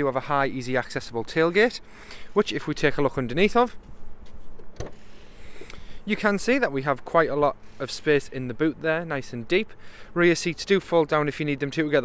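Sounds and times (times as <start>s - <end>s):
faint background hiss: 0.0s - 12.0s
tailgate latch clicks: 4.6s - 5.0s.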